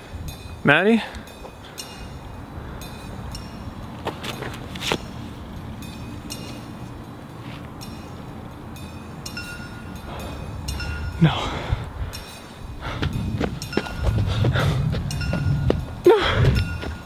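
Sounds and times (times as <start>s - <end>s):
low outdoor rumble: 0.0s - 17.0s.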